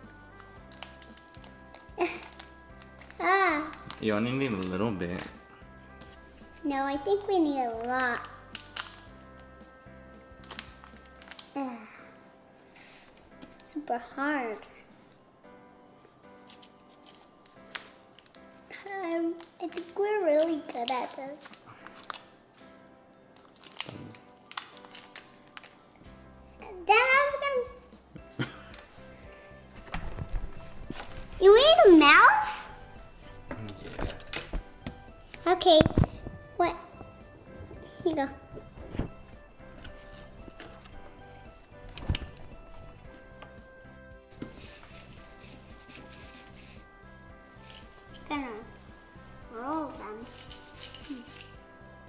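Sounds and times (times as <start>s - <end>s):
background music: 0.0s - 52.0s
plastic packet clicks and taps: 0.4s - 5.4s, 7.7s - 9.5s.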